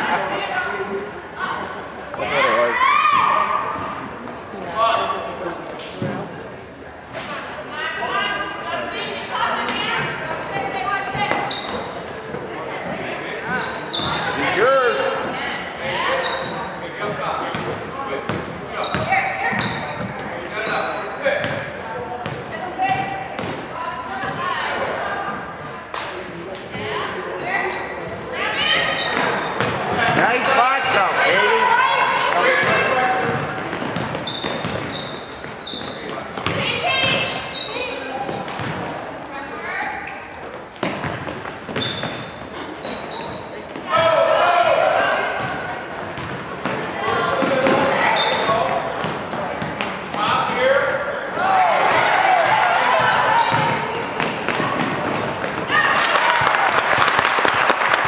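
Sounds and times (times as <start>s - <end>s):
basketball bouncing on court: 17.4s - 20.3s, 21.4s - 23.6s, 29.0s - 31.2s, 32.0s - 37.6s, 38.3s - 39.0s, 40.8s - 42.4s, 45.4s - 50.5s, 52.4s - 56.4s.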